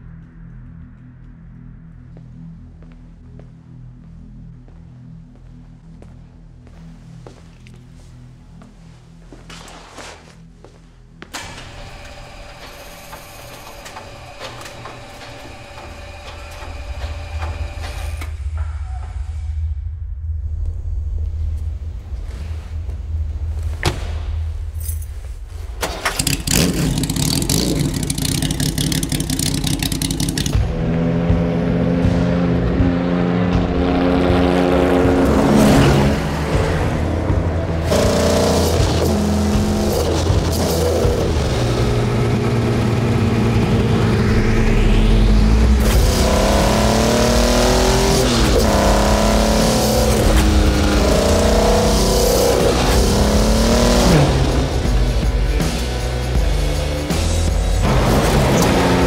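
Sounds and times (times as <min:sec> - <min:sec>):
music: 0:00.0 - 0:15.7, 0:16.3 - 0:59.0
car engine starting and revving: 0:25.8 - 0:59.0.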